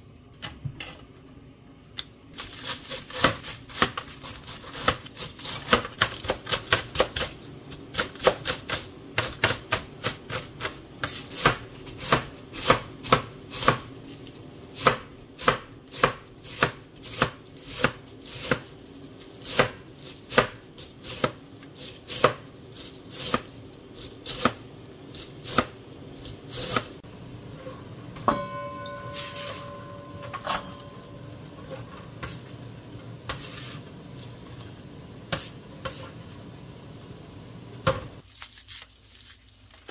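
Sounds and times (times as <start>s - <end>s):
knife chopping on cutting board: 8.0s - 13.9s, 14.8s - 18.7s, 19.4s - 21.4s, 24.2s - 24.6s.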